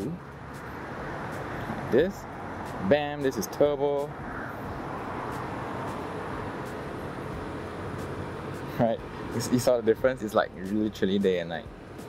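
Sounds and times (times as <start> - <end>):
urban background hum: 0.0 - 12.0.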